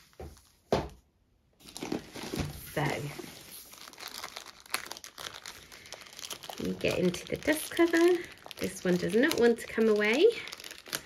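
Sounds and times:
plastic cover crinkling: 0:01.6 - 0:11.0
sharp crackle: 0:03.4 - 0:11.0.

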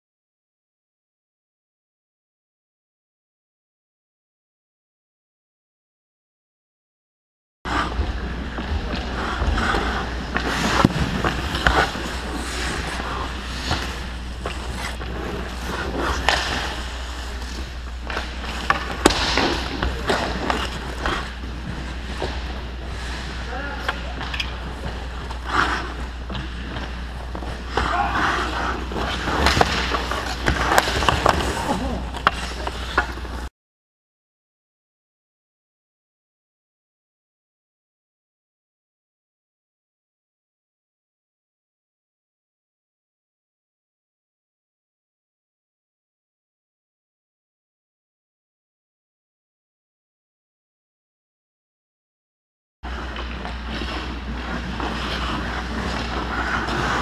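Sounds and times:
hockey sticks clacking: 0:07.7 - 0:33.5, 0:52.9 - 0:57.0
ice skates scraping: 0:07.7 - 0:33.5, 0:52.8 - 0:57.0
steady low hum: 0:07.7 - 0:33.5
pucks knocking: 0:08.6 - 0:33.4.

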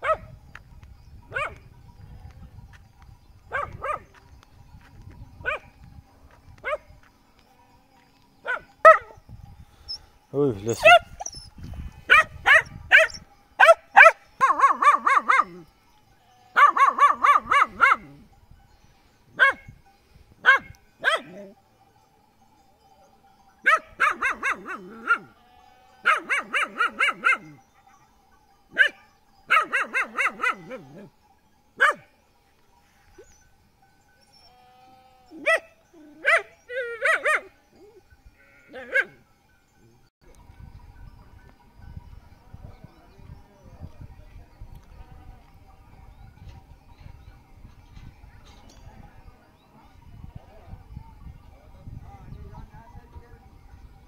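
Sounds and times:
sheep and goats bleating: 0:03.5 - 0:08.9, 0:14.3 - 0:18.4, 0:24.0 - 0:28.2, 0:29.7 - 0:31.2, 0:34.1 - 0:39.3, 0:44.7 - 0:46.1.

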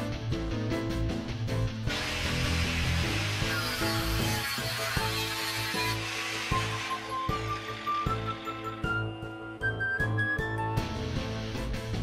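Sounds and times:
background music: 0:00.0 - 0:12.0
angle grinder running: 0:01.9 - 0:09.1.

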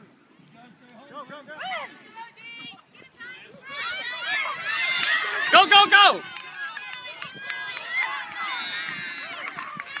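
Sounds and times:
high-pitched voices shouting and cheering: 0:01.6 - 0:10.0.

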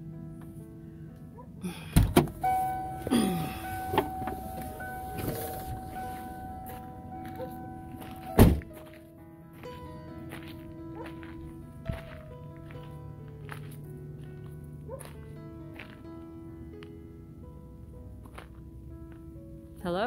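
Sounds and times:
background music: 0:00.0 - 0:20.0
vehicle door shutting: 0:01.9 - 0:06.5, 0:08.2 - 0:08.8
knocks and thuds: 0:02.0 - 0:02.4, 0:08.4 - 0:08.7.

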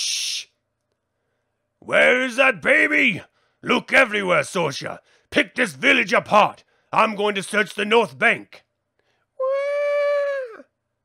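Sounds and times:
person wailing like a baby: 0:09.4 - 0:10.6.

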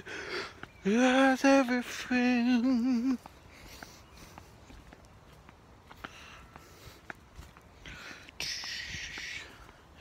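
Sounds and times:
faint footsteps: 0:00.0 - 0:10.0.

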